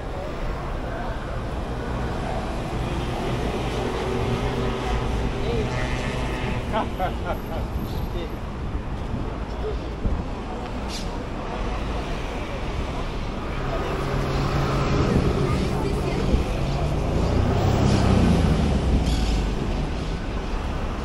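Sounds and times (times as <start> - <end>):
street traffic noise: 0.0 - 21.0
vehicle engine passing: 13.7 - 19.6.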